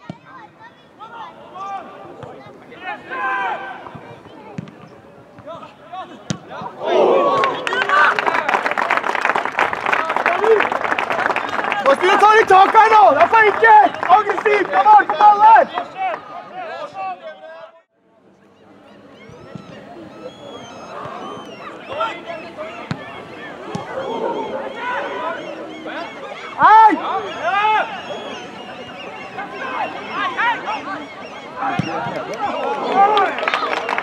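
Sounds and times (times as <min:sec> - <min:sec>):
footballers shouting: 0:00.0 - 0:04.5, 0:05.4 - 0:08.8, 0:09.9 - 0:17.7, 0:19.3 - 0:34.0.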